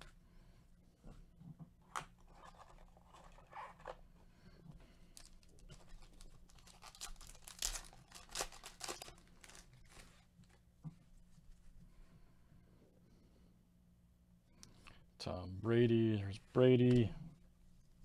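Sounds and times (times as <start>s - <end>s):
foil wrapper tearing and crinkling: 5.2s - 10.2s.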